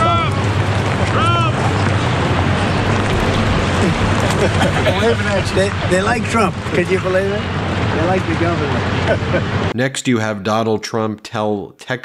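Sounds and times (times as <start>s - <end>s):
wind buffeting a microphone: 0.4s - 9.0s
steady low rumble: 0.4s - 9.7s.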